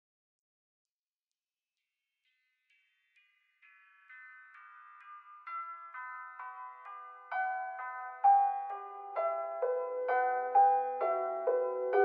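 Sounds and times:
lo-fi piano melody: 3.8s - 12.0s.

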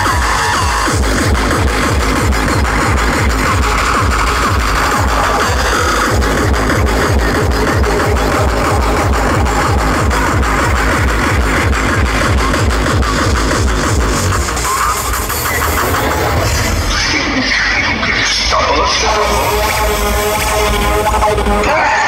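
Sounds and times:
hard techno over sound system: 0.0s - 22.0s.

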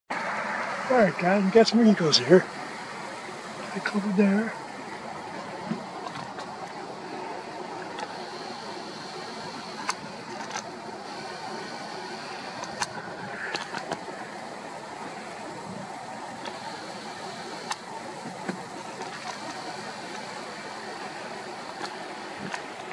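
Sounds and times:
outdoor background noise: 0.1s - 22.9s.

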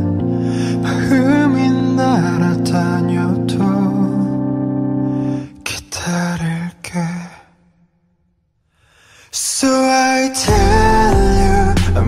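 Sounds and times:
faint breath: 8.6s - 9.4s.

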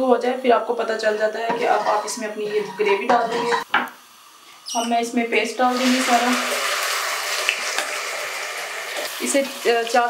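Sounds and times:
paste sizzling in hot oil: 0.6s - 10.0s.

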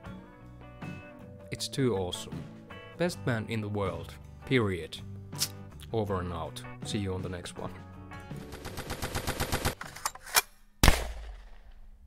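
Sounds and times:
machine-gun burst: 8.4s - 9.8s
sharp crack: 10.8s - 12.0s.

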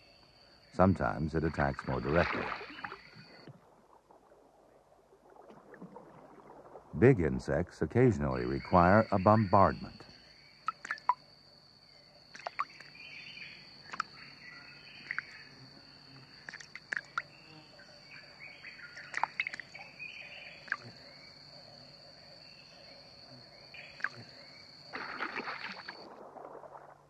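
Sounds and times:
bird chirps: 12.5s - 15.5s.

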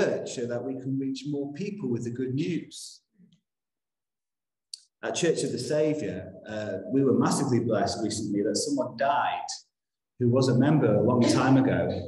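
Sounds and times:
person speaking: 4.7s - 12.0s.

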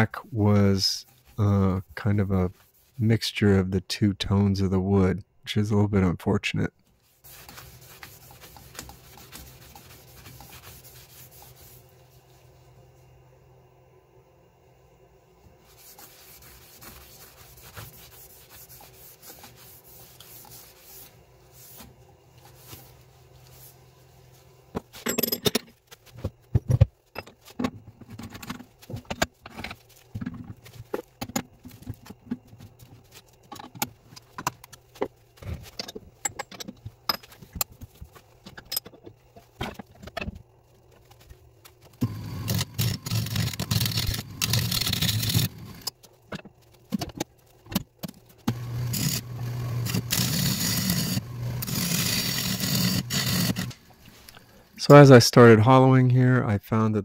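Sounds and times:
lathe motor hum: 42.0s - 45.9s, 48.5s - 53.8s
lathe tool cutting wood: 48.5s - 53.7s.

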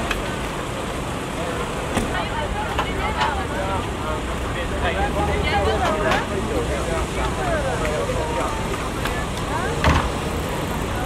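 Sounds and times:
faint voices: 0.0s - 11.0s
street traffic: 0.0s - 11.0s.

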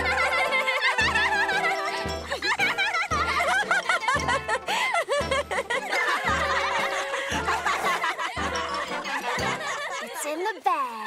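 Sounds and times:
background music: 0.0s - 10.6s.

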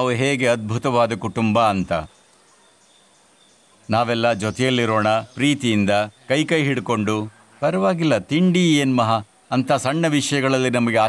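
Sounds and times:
man talking: 0.0s - 2.1s, 3.9s - 11.0s
low outdoor hiss: 0.0s - 11.0s.

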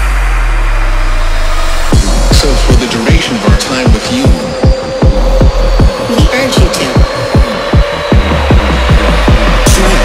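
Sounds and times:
kick drum: 1.9s - 10.0s.

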